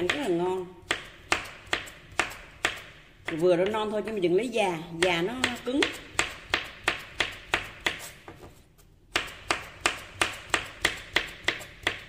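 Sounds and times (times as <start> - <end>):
knife chopping on cutting board: 0.0 - 3.8, 5.0 - 12.0.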